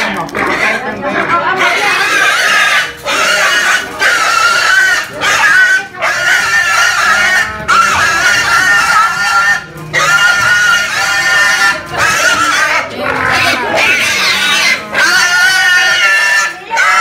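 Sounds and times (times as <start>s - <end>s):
pig squealing: 0.0s - 17.0s.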